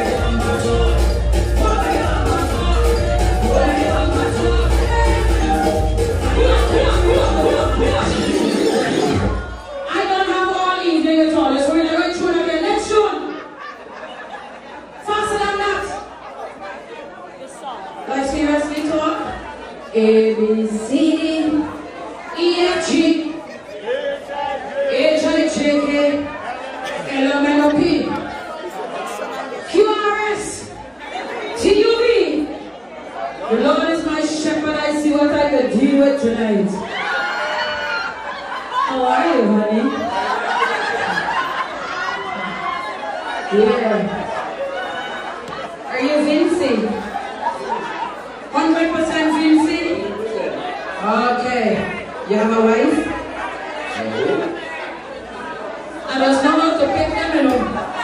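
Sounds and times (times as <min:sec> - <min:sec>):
woman singing into microphone: 0:00.0 - 0:09.4
chatter in a large hall: 0:00.0 - 0:58.0.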